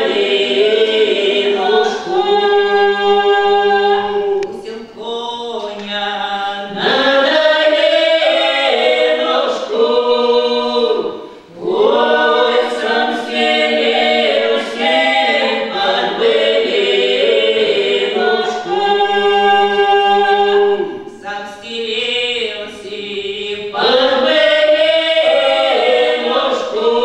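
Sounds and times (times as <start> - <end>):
vocal ensemble singing a cappella: 0.0 - 27.0.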